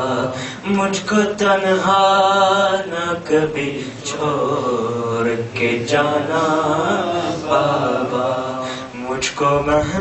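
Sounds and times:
man chanting into a microphone: 0.0s - 10.0s.

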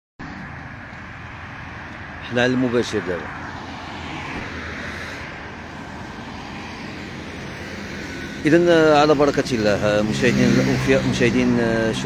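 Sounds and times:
drone of vehicles: 0.2s - 12.0s.

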